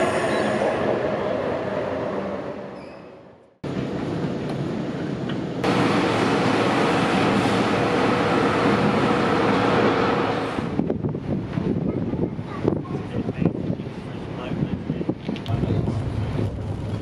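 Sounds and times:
electric train passing: 0:00.0 - 0:11.8.

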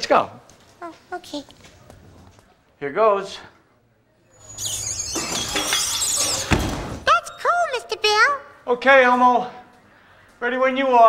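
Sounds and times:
squealing friction on metal pole: 0:04.3 - 0:06.9.

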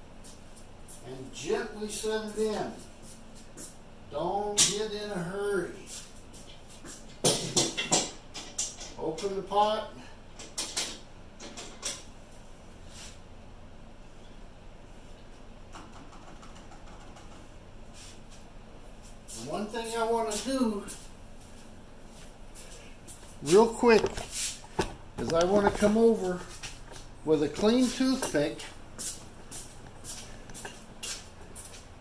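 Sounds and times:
low room hum: 0:00.0 - 0:32.0
footsteps scuffing on concrete: 0:20.2 - 0:32.0.

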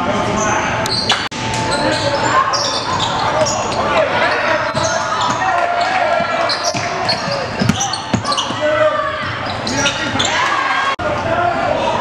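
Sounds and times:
voices and shouts echoing: 0:00.0 - 0:12.0
basketball bouncing on hardwood: 0:07.6 - 0:08.6.

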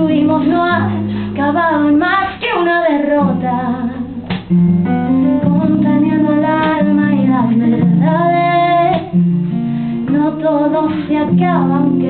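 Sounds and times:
woman singing: 0:00.0 - 0:04.4, 0:05.1 - 0:09.2, 0:10.0 - 0:12.0
acoustic guitar strumming: 0:00.0 - 0:12.0.

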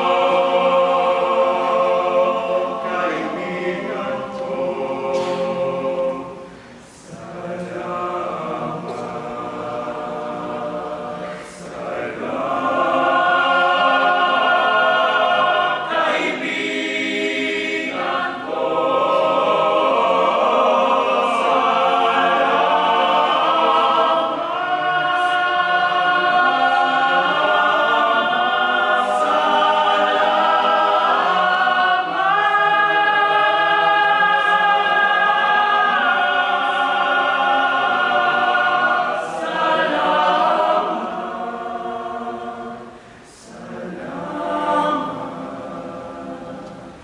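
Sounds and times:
boys' choir singing a cappella: 0:00.0 - 0:47.0.

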